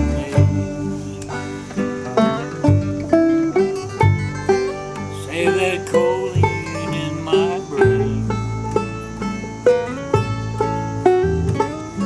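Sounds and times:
person singing: 0:00.0 - 0:01.0, 0:05.1 - 0:08.4
acoustic guitar picked and strummed: 0:00.0 - 0:12.0.

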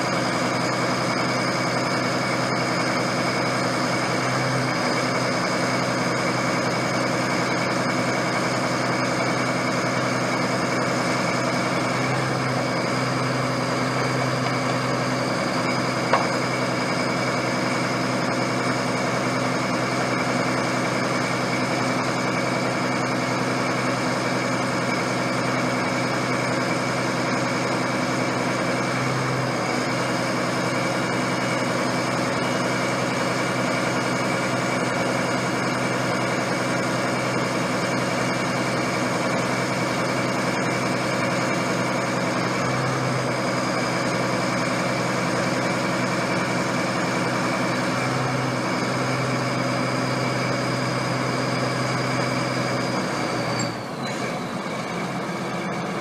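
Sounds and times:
drill rig engine idling: 0:00.0 - 0:56.0.

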